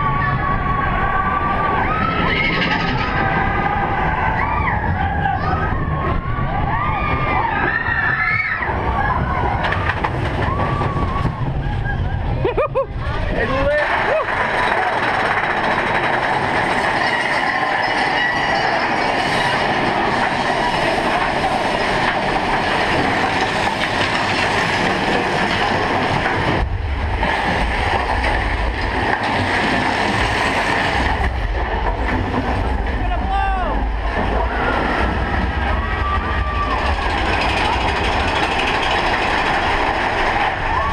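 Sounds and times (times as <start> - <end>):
deep rumble: 0.0 - 40.9
roller coaster cars rattling: 0.0 - 40.9.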